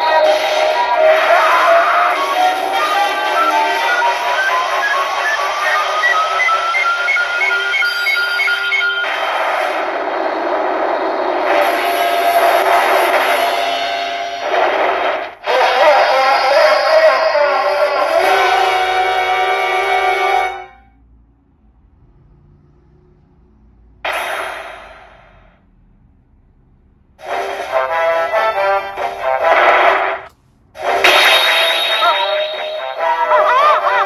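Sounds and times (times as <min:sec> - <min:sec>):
pachinko machine music and effects: 0:00.0 - 0:09.5, 0:30.9 - 0:33.3.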